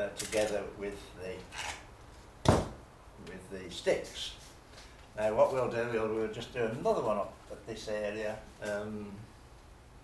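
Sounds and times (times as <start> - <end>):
sharp knock: 2.4 - 2.8.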